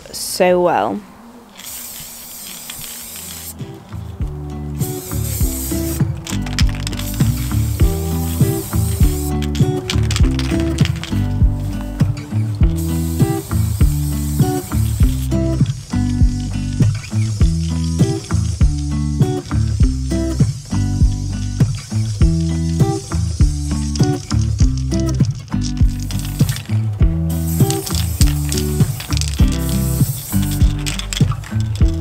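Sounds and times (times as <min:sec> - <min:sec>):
spray paint can hissing: 0:01.5 - 0:04.1, 0:04.7 - 0:32.0
background music: 0:02.8 - 0:32.0.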